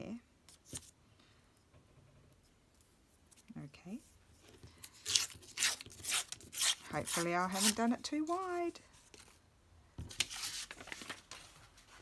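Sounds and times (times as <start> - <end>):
paper tearing: 5.0 - 7.8.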